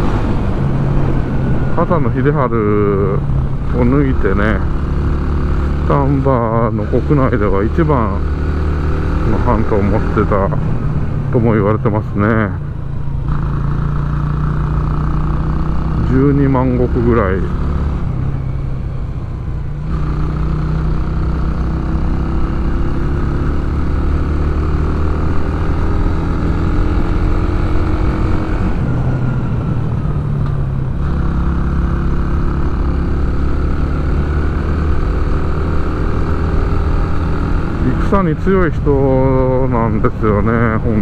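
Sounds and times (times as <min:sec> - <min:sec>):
motorcycle engine running: 0:00.0 - 0:41.0.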